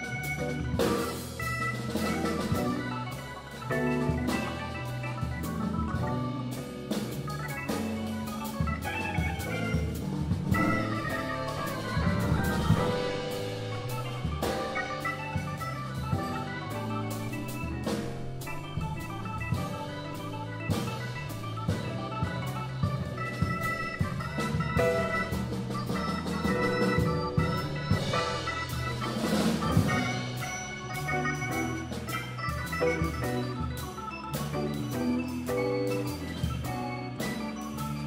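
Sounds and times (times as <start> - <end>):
drum kit: 0.0 - 38.0
jazz organ chords: 0.0 - 38.0.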